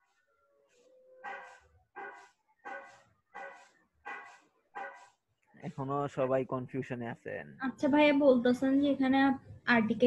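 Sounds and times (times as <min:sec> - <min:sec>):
dog barking faintly: 0:00.7 - 0:05.2.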